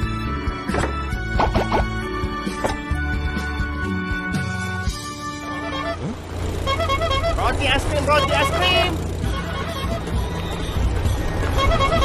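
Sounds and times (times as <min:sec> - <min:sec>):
small motorcycle engine running: 0:05.2 - 0:12.0.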